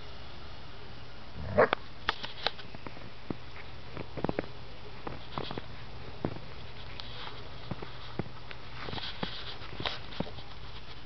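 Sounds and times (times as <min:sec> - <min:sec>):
puppy sound: 0:01.4 - 0:01.8.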